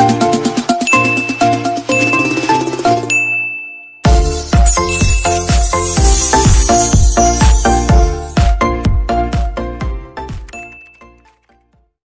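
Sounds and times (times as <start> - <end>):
high ding ringing: 0.9 - 4.0, 4.7 - 8.3
jingle of bell-like notes: 0.9 - 8.5.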